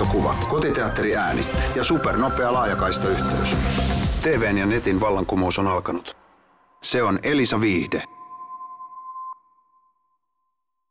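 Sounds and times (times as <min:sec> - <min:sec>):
electronic two-pitch tone: 0:07.8 - 0:10.2.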